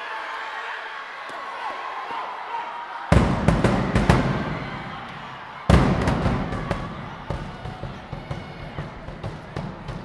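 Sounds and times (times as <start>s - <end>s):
drumline unison hits: 3.1s - 10.0s.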